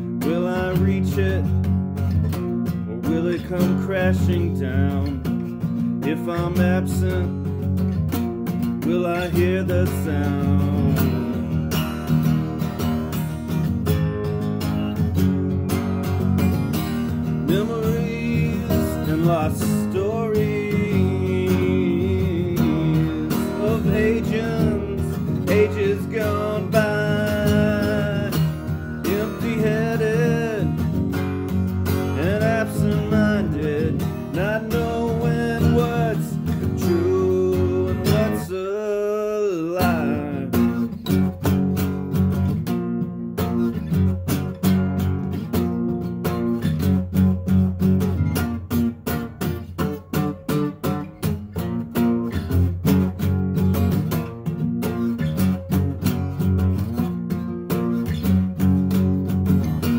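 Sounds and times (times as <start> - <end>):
man singing: 0.0 - 1.8, 2.8 - 7.8, 8.4 - 11.9, 17.0 - 41.3
acoustic guitar strumming: 0.0 - 59.9.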